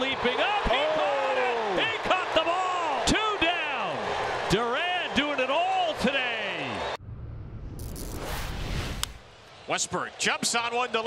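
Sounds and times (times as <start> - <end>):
man shouting excitedly: 0.0 - 4.0
low rumble: 7.0 - 9.4
swooshing hit: 7.0 - 9.4.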